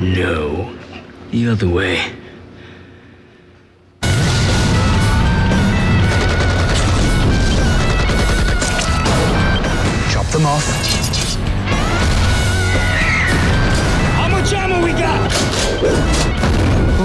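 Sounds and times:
explosions: 4.0s - 10.0s, 16.4s - 17.0s
machine-gun fire: 4.0s - 10.0s
loud action music: 4.0s - 17.0s.

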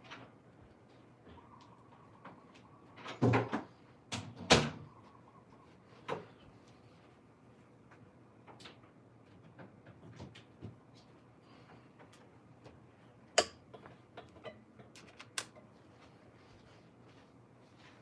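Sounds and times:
small clicks and knocks: 11.7s - 15.7s.

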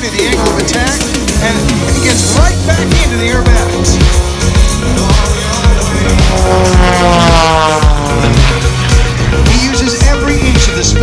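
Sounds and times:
propeller plane engine passing: 0.0s - 10.5s
background music with steady beat: 0.0s - 11.0s.

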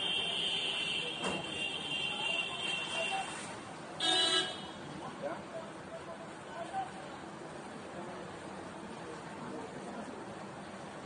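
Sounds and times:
vehicle horn toot: 4.0s - 4.7s.

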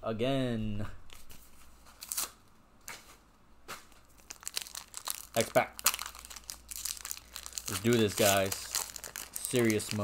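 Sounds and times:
trading cards rustling: 4.1s - 10.0s.

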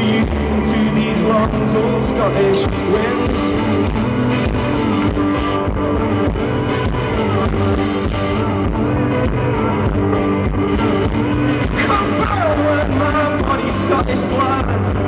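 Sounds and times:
lead vocal singing: 0.0s - 15.0s
strummed electric guitar chords: 0.0s - 15.0s.

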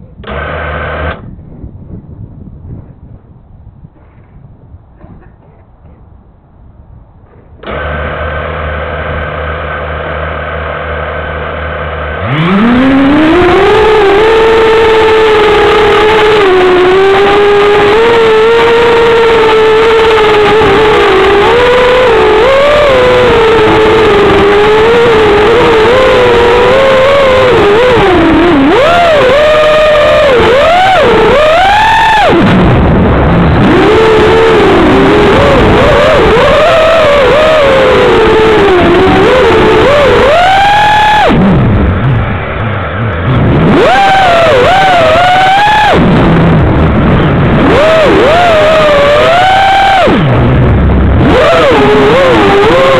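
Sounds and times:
drone motors whining: 0.0s - 2.1s, 7.2s - 52.9s.

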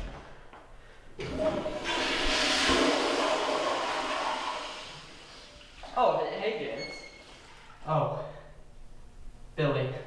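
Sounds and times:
toilet flushing: 1.2s - 7.8s.

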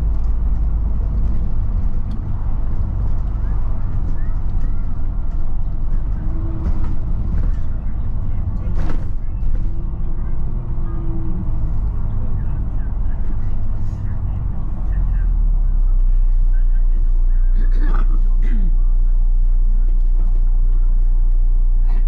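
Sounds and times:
bus body rattles: 0.0s - 16.0s
bus diesel engine drone: 0.0s - 22.0s
road noise: 0.0s - 22.0s.

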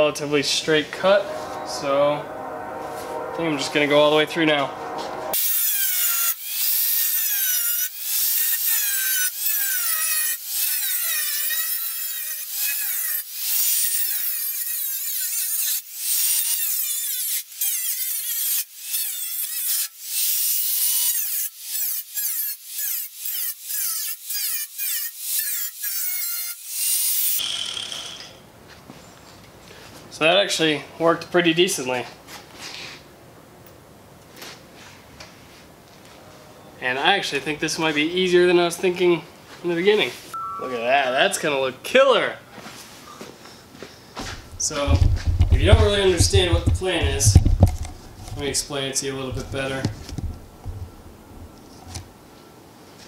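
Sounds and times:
angle grinder cutting steel: 1.0s - 28.4s.

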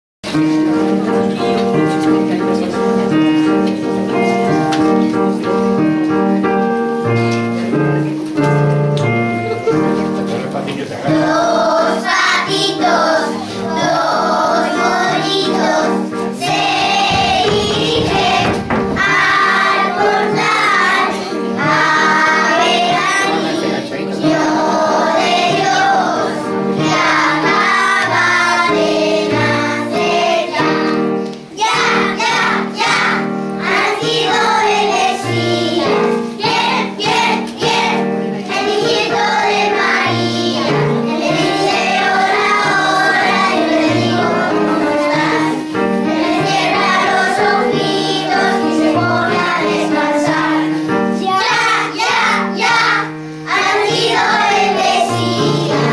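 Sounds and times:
instrumental accompaniment: 0.2s - 55.9s
children singing: 10.4s - 55.9s.

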